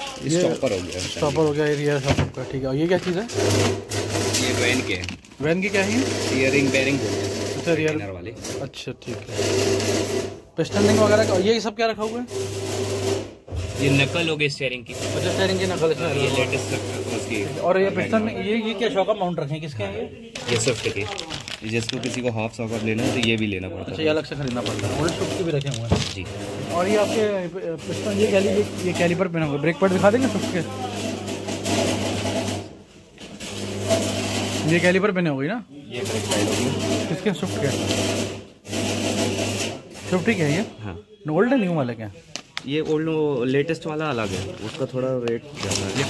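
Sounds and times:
plastic wrapping crinkling: 0.0s - 3.6s, 4.2s - 6.8s, 20.4s - 27.3s, 43.8s - 46.0s.

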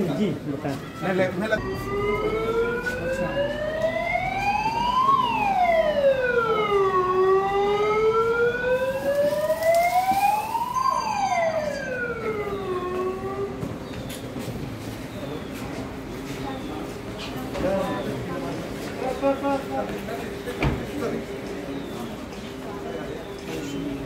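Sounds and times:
siren wailing: 1.5s - 13.8s.

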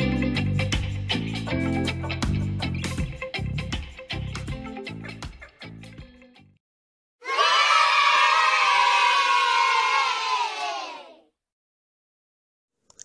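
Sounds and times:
children cheering and shouting: 7.2s - 11.3s.

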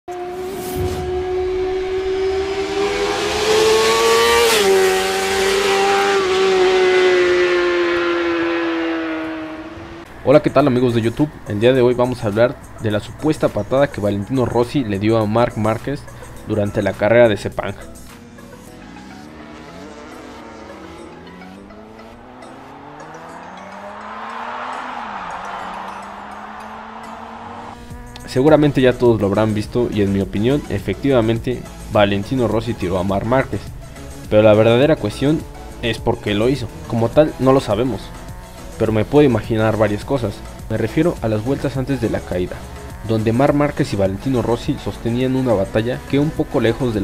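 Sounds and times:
high-revving engine passing by: 0.1s - 14.5s, 17.9s - 47.0s
rushing noise: 23.1s - 27.8s.

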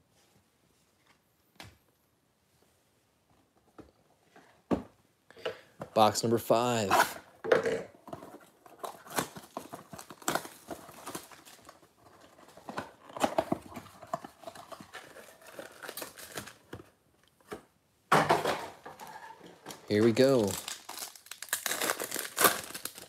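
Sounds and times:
rustling and crinkling of foil packs: 8.1s - 17.0s, 18.9s - 23.0s
cardboard tearing: 20.0s - 23.0s.

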